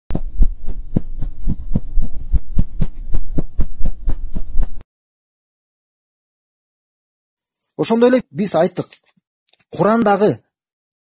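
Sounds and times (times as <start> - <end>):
fast deep beats: 0.1 - 4.8
low hum: 0.2 - 4.8.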